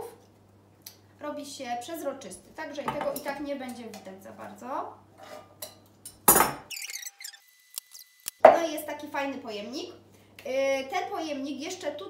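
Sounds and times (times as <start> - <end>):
squeaky scrape of tin can: 6.7 - 8.2.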